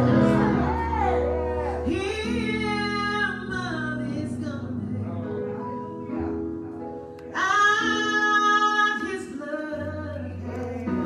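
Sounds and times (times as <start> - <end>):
woman singing with vibrato: 0.0 - 4.9.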